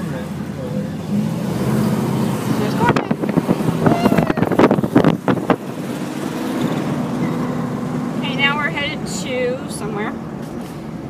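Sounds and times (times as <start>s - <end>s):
car engine cruising: 0.0s - 11.0s
road and wind noise: 0.0s - 11.0s.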